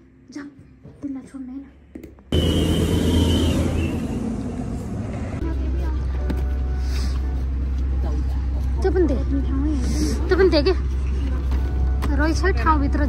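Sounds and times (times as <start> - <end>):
bus engine droning: 2.3 - 13.0.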